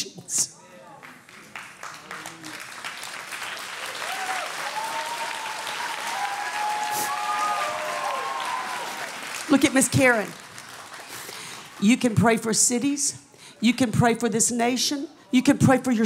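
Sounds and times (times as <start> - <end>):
audience applauding: 0.9 - 11.8.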